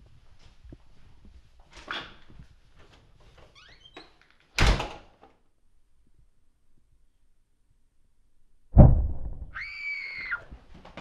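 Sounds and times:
heavy thump: 8.8 - 9.5
short high-pitched scream: 9.5 - 10.5.

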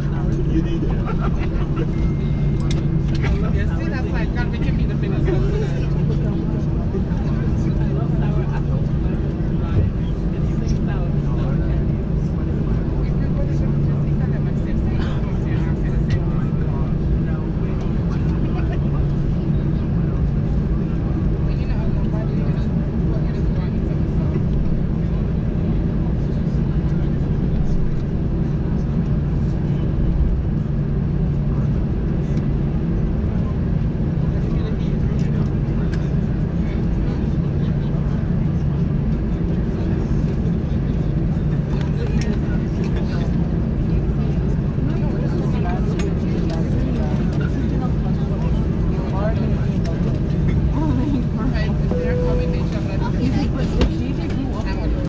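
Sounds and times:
aircraft cabin engine hum: 0.0 - 55.0
indistinct passenger voices: 0.0 - 55.0.

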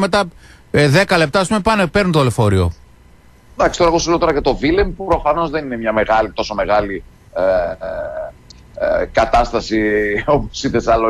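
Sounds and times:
man's hesitation sounds: 6.6 - 9.4.

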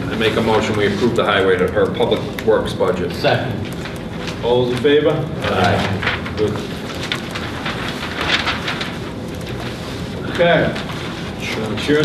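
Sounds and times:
paper rustling and shuffling: 0.0 - 12.0.

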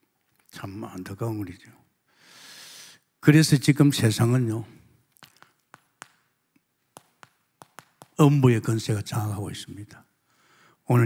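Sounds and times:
chalk tapping on blackboard: 5.2 - 6.3, 7.0 - 8.2.

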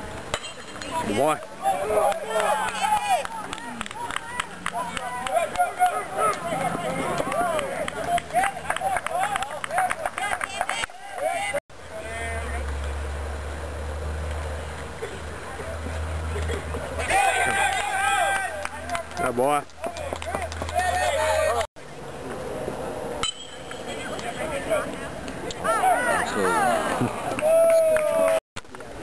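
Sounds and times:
spectators shouting: 0.9 - 11.6, 17.0 - 19.3, 25.5 - 28.4.

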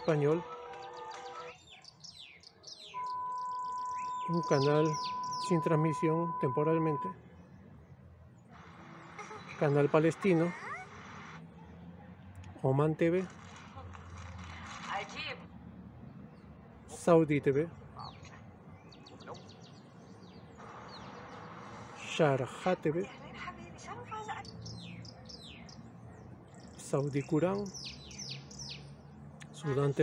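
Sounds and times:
small birds chirping: 0.0 - 11.6, 14.9 - 30.0
steady test tone: 3.0 - 7.1.

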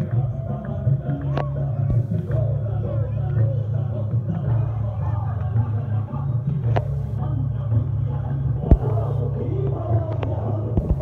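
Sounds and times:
crowd voices: 0.0 - 11.0
devotional music: 0.0 - 11.0.

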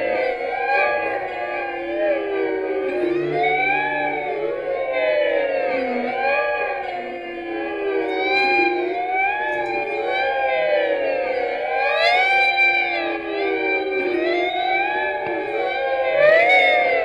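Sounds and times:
siren-like sound: 0.0 - 17.0
sliding electric guitar tones: 0.0 - 17.0.

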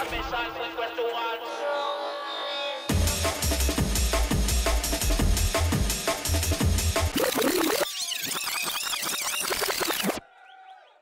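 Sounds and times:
electronic dance music: 0.0 - 10.2.

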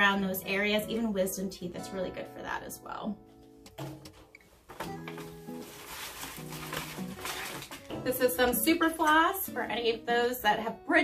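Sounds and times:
soft background music chords: 0.0 - 11.0
plastic packet crinkling: 4.8 - 8.4.

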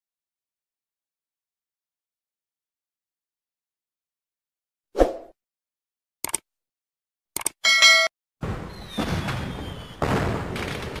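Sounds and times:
bright bell ding: 7.6 - 8.1
faint falling whistle: 8.8 - 10.0.

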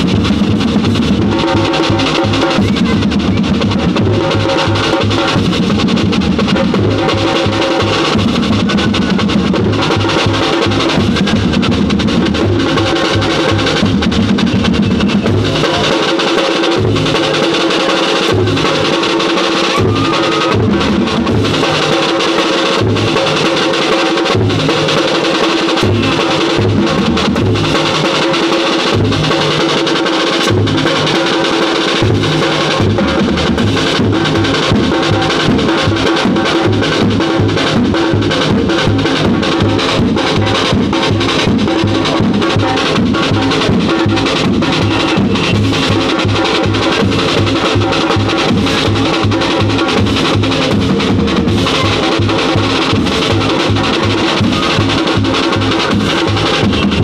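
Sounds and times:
drum ensemble playing: 0.0 - 57.0.

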